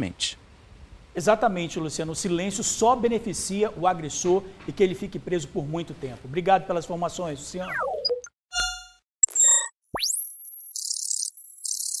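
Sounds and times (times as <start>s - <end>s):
electronic ding: 7.7s - 10.1s.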